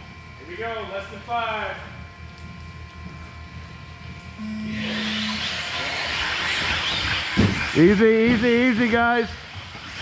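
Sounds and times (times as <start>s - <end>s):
steady start beep: 4.4s - 5.4s
electric toy cars whirring: 4.4s - 10.0s.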